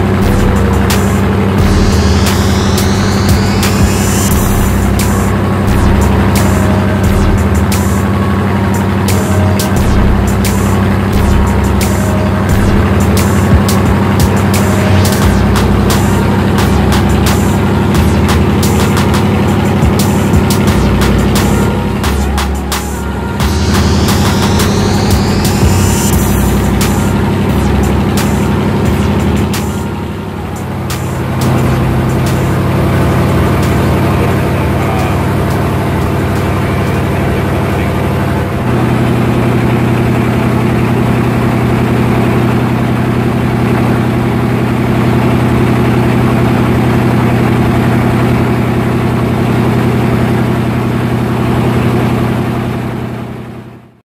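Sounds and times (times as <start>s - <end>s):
boat engine droning: 0.0s - 54.0s.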